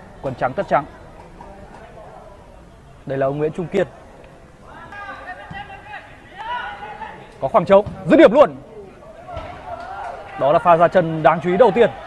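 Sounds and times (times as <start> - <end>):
distant shouting voices: 0.0 - 12.0.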